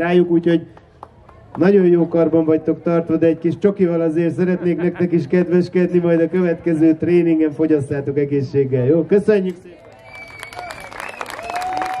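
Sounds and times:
audience applauding: 0:09.8 - 0:12.0.

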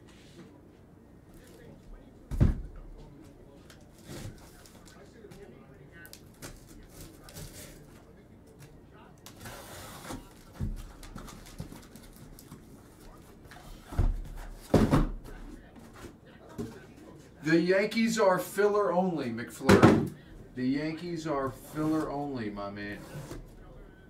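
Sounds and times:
cardboard scraping rustle: 0:09.3 - 0:12.2, 0:21.4 - 0:23.5
boxes knocking on table: 0:14.0 - 0:15.2.

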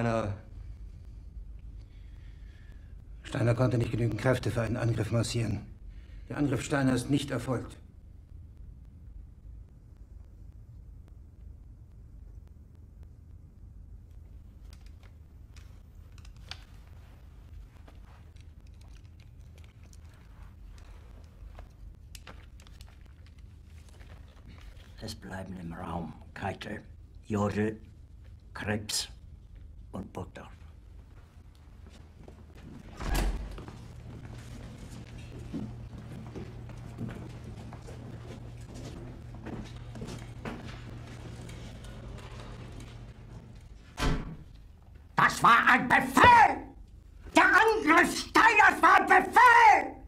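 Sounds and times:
low steady hum: 0:00.0 - 0:45.3
faint clicks and rustles: 0:14.0 - 0:25.1, 0:30.8 - 0:45.1
boot heel footsteps on hard floor: 0:33.5 - 0:41.5.

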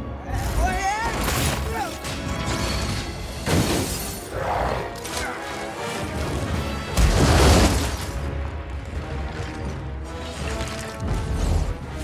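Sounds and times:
film score music: 0:00.0 - 0:12.0
heavy crash and breaking: 0:06.3 - 0:08.2.

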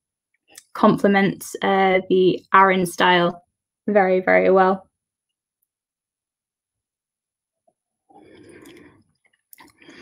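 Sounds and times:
person sipping and swallowing: 0:08.2 - 0:10.0.

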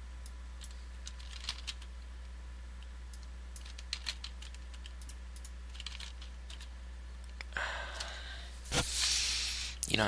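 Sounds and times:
low steady hum: 0:00.0 - 0:10.0
keyboard keystrokes: 0:03.2 - 0:06.7.

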